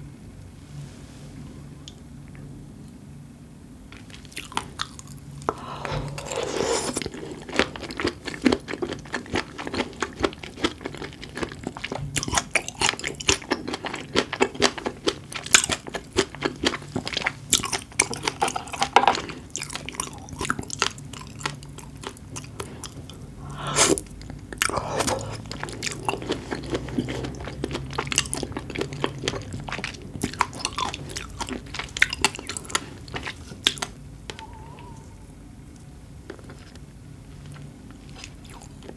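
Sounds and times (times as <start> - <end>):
close chewing of seafood: 4.0 - 35.1, 37.4 - 38.9
loud bite: 23.4 - 27.3.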